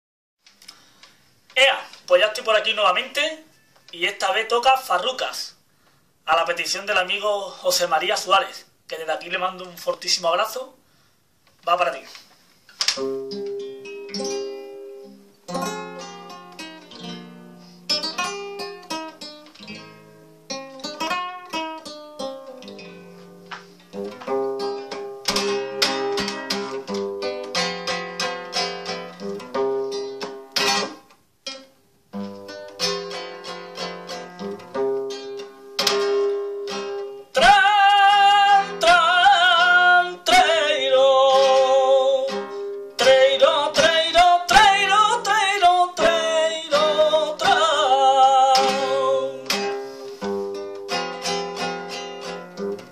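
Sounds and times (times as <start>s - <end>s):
flamenco guitar playing: 12.8s - 52.9s
man singing flamenco: 37.3s - 49.8s.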